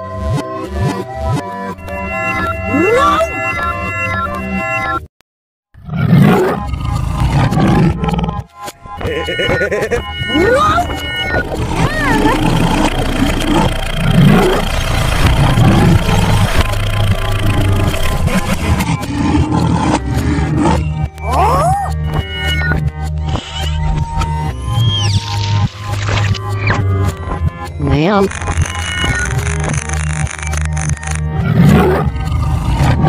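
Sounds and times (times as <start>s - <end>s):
background music: 6.7s - 30.1s
sliding pitch glides: 8.7s - 20.9s
cartoon roar sound effects: 9.1s - 14.7s.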